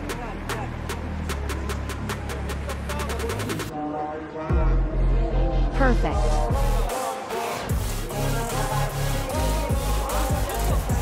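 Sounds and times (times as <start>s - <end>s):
electronic music with bass drop: 0.0s - 3.7s, 4.5s - 11.0s.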